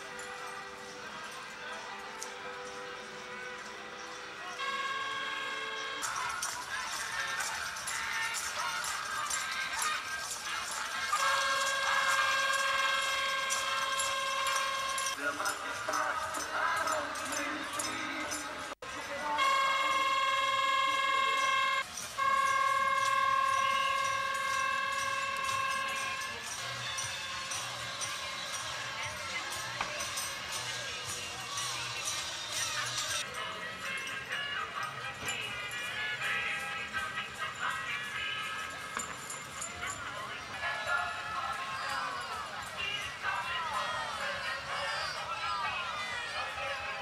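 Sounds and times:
crowd chatter: 0:00.0 - 0:47.0
horn blowing long high notes: 0:02.3 - 0:30.6.

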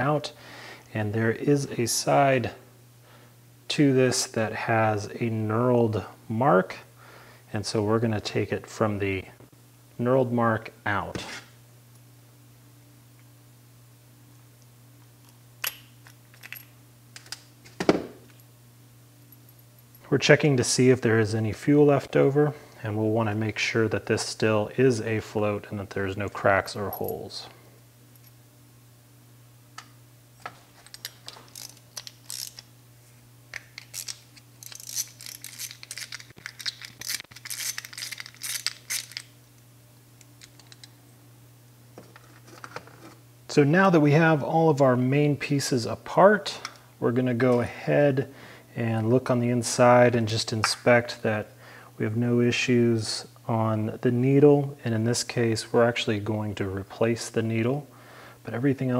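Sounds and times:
faint low steady hum: 0:00.0 - 0:58.9
metal parts clicking and clattering: 0:15.6 - 0:17.4, 0:30.4 - 0:32.7, 0:33.5 - 0:39.4, 0:40.2 - 0:41.0.

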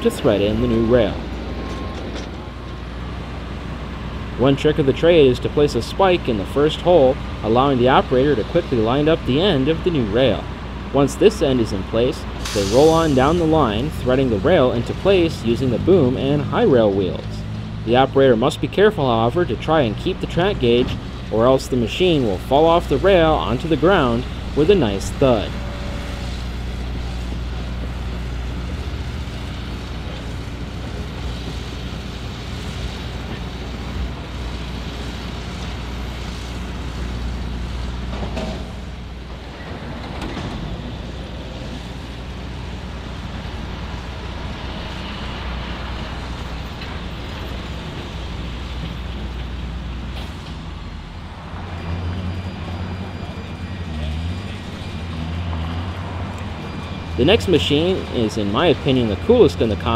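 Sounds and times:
deeper engine hum: 0:00.0 - 0:59.9
diesel engine running: 0:00.0 - 0:59.9.

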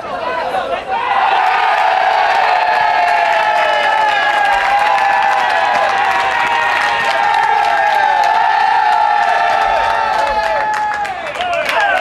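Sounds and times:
group shouting cheers: 0:00.8 - 0:12.0
steady clapping: 0:03.0 - 0:12.0.

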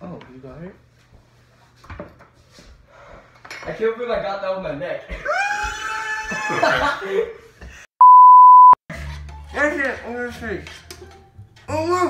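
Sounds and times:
boys exclaiming and laughing: 0:05.1 - 0:07.4.

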